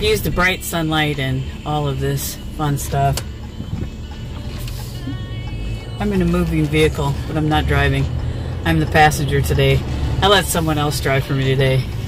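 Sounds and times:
car cabin engine and road rumble: 0:00.0 - 0:12.0.

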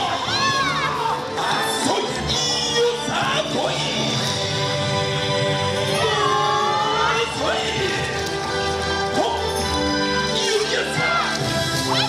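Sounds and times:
dancers shouting together: 0:00.0 - 0:03.1, 0:10.2 - 0:12.0
loud dance music: 0:00.0 - 0:12.0.

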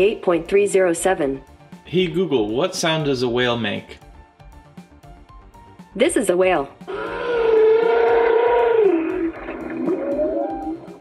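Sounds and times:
whale call through speaker: 0:06.9 - 0:11.0.

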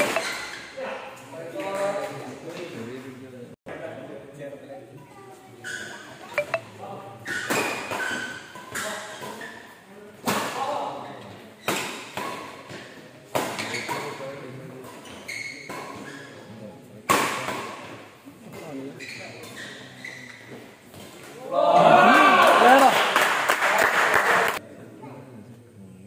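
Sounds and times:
people shouting: 0:21.4 - 0:22.9
crowd cheering: 0:21.5 - 0:24.6.

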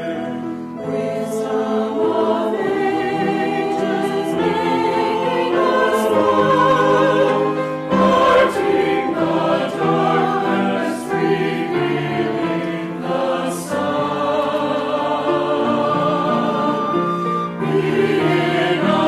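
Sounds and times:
choir singing in harmony: 0:00.0 - 0:19.0.

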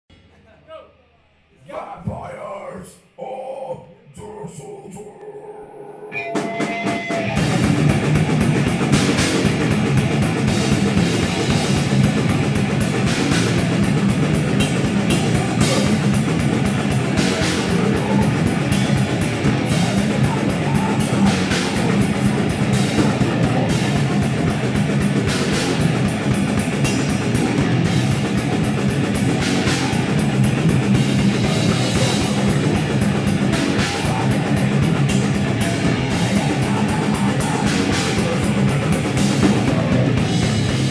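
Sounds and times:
distorted electric guitar: 0:03.7 - 0:40.9
live metal band playing: 0:06.1 - 0:40.9
drum kit hammering: 0:06.4 - 0:40.9.

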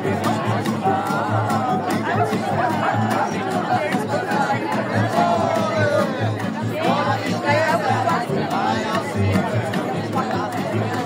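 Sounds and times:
acoustic guitar: 0:00.0 - 0:11.0
audience chatter: 0:00.0 - 0:11.0.

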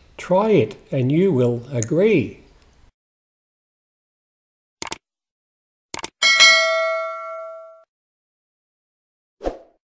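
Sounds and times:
mouse clicks: 0:06.0 - 0:06.2
notification bell ding: 0:06.2 - 0:07.9.

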